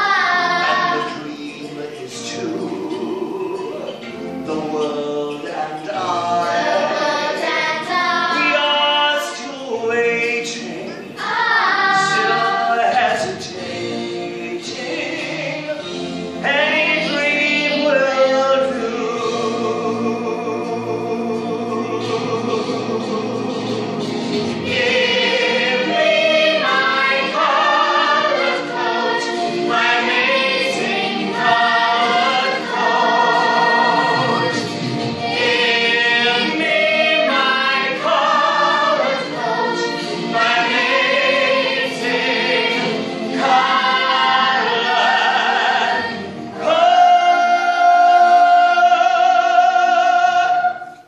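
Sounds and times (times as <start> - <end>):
children's chorus singing: 0.0 - 51.0.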